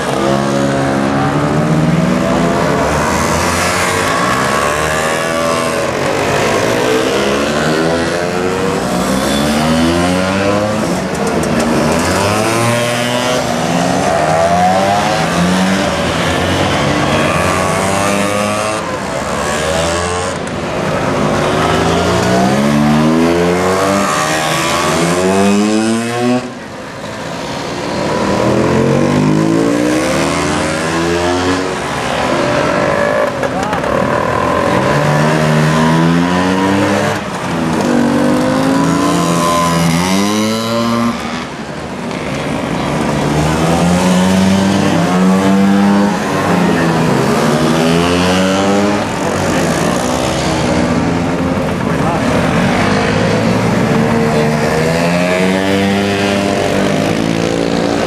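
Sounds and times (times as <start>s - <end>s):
scooters accelerating past: 0.0s - 58.0s.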